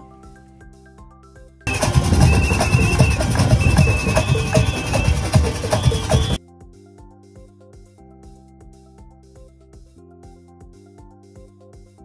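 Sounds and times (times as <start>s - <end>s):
faint background music: 0.0s - 12.0s
fast hand drumming: 1.7s - 6.4s
warbling whistle: 1.7s - 6.4s.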